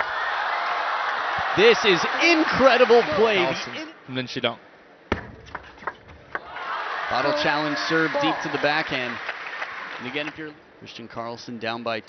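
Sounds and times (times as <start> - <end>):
arena crowd noise: 0.0 - 4.0, 6.3 - 10.6.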